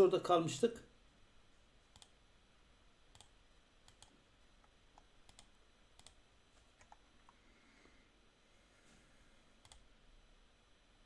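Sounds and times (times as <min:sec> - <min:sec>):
faint computer clicks: 0:01.9 - 0:02.2, 0:03.1 - 0:06.2, 0:06.8 - 0:07.4, 0:09.6 - 0:09.9.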